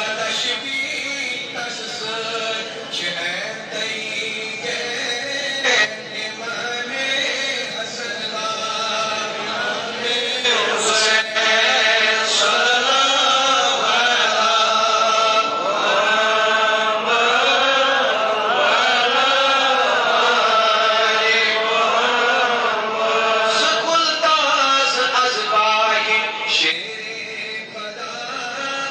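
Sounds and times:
person chanting unaccompanied: 0.0s - 28.9s.

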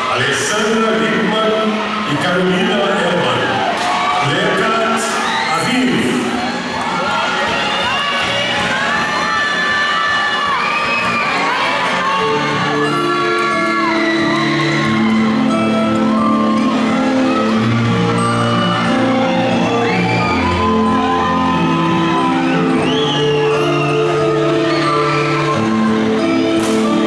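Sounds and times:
audience whooping and cheering: 0.0s - 27.0s.

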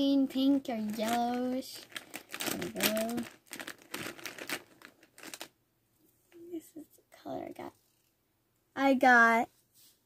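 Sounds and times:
markers crinkling and rustling: 0.4s - 5.5s.

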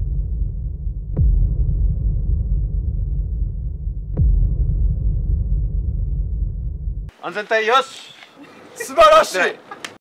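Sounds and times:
deep throbbing rumble: 0.0s - 7.1s.

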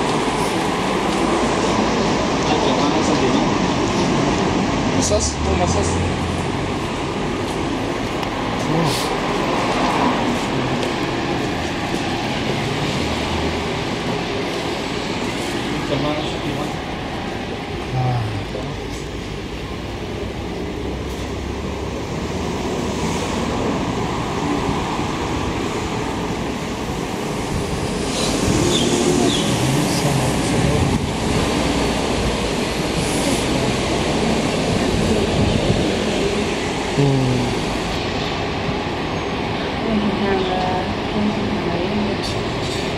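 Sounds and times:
street traffic: 0.0s - 42.9s
indistinct voices: 15.8s - 19.6s, 28.0s - 38.1s.

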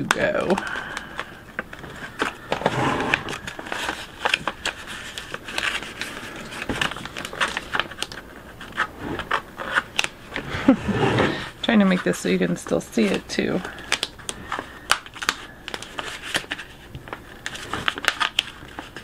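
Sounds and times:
tape and paper crinkling: 0.0s - 10.5s, 11.6s - 19.0s.

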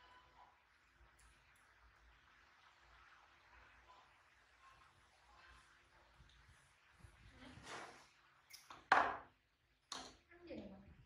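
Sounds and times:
bottle clattering on tabletop: 8.9s - 9.3s.

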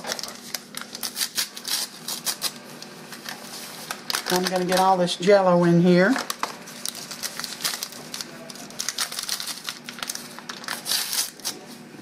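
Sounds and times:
packet crinkling: 0.0s - 5.0s, 6.2s - 11.6s.

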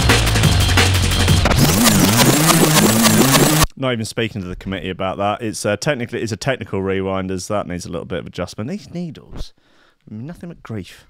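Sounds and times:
drum and bass music from vinyl: 0.0s - 3.7s.

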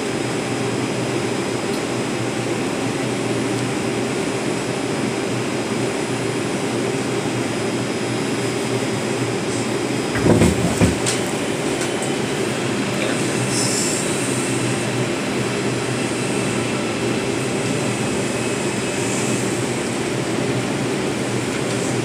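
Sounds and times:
subway train hum: 0.0s - 22.0s
heavy low clunks: 10.2s - 11.1s.

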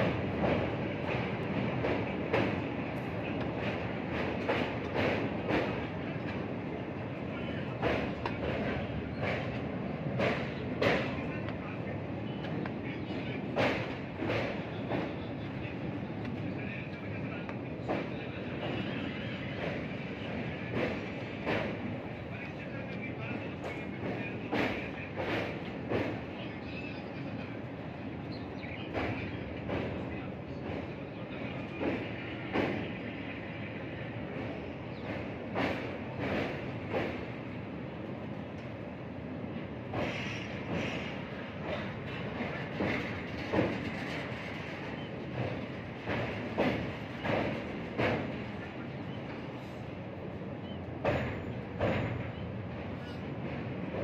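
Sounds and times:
train running noise: 0.0s - 54.0s
wheel clacks over rail joints: 41.6s - 48.6s.

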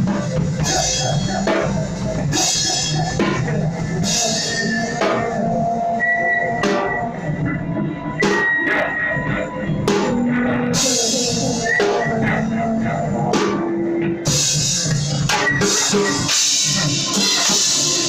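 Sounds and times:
drum kit played hard: 0.0s - 18.0s
sustained pitched notes: 0.0s - 18.0s.

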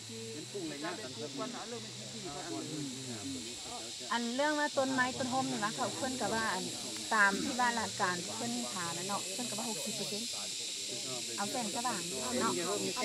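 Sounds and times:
people talking in a group: 0.0s - 13.0s
steady high hiss: 0.0s - 13.0s.

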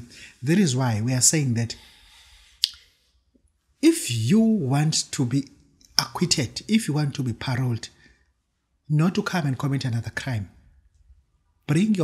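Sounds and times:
man speaking: 0.0s - 1.8s, 3.8s - 8.0s, 8.9s - 10.6s, 11.7s - 12.0s.

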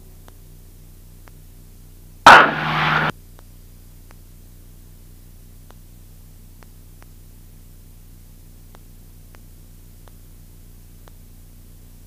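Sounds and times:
faint steady hum: 0.0s - 12.0s
headset intercom static burst: 2.3s - 3.1s.

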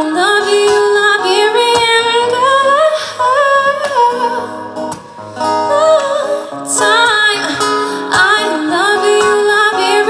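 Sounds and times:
soft acoustic guitar: 0.0s - 10.0s.

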